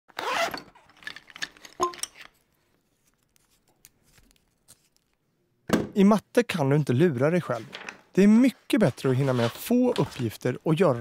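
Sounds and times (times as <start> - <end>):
zipper rasping open: 0.1 - 0.7.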